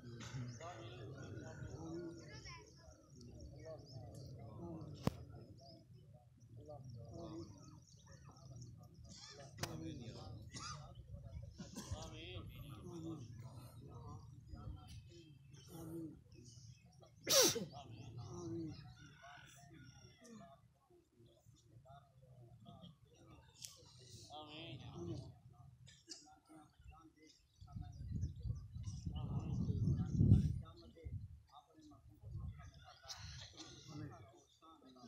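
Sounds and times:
faint murmuring voices: 0:00.0 - 0:35.0.

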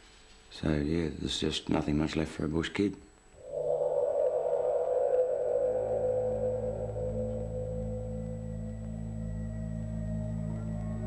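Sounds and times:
ambient droning music: 0:03.4 - 0:11.0
low drone: 0:03.4 - 0:11.0.

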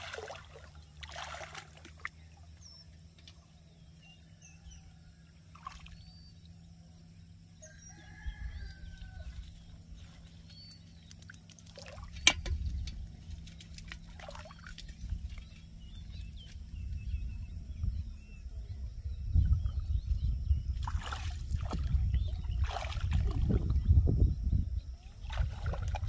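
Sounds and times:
shallow water sloshing and splashing: 0:00.0 - 0:02.4, 0:09.2 - 0:16.6, 0:20.7 - 0:23.9, 0:25.2 - 0:26.0
birds calling: 0:00.0 - 0:23.0
rooster crowing: 0:07.6 - 0:09.7.

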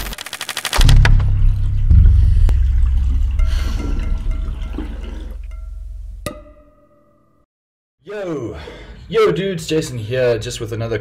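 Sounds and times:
rapid clicking: 0:00.0 - 0:01.4
deep low boom: 0:00.8 - 0:06.2.

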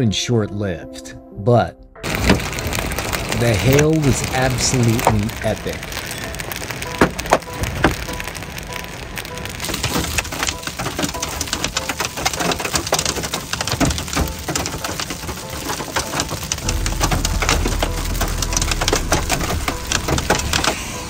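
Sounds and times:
hail hitting vehicle: 0:02.0 - 0:21.0.

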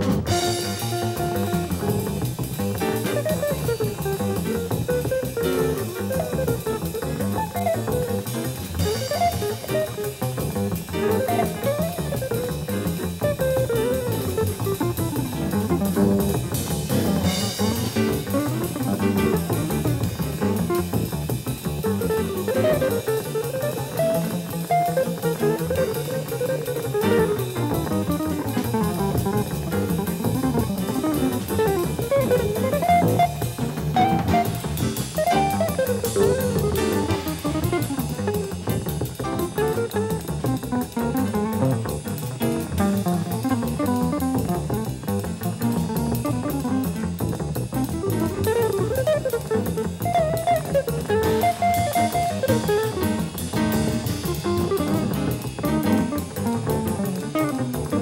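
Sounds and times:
bass: 0:00.0 - 0:58.0
drums: 0:00.0 - 0:58.0
guitar melodic lines: 0:00.0 - 0:58.0.

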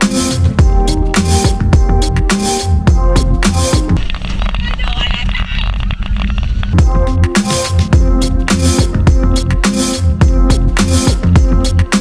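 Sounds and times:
background music: 0:00.0 - 0:04.0, 0:06.8 - 0:12.0
wind rushing over camera: 0:04.0 - 0:06.8.

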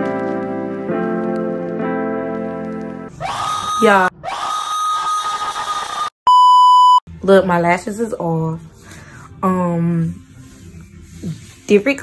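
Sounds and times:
electronic test-tone beep: 0:06.3 - 0:07.0.

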